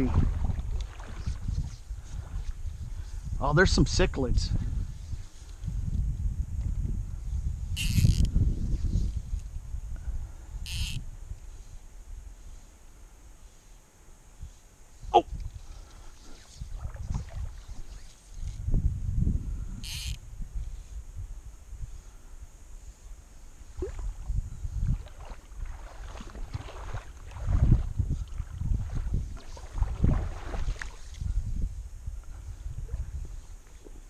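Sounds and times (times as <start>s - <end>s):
person wading through river water: 0.0s - 2.9s, 15.5s - 18.4s, 23.6s - 31.4s.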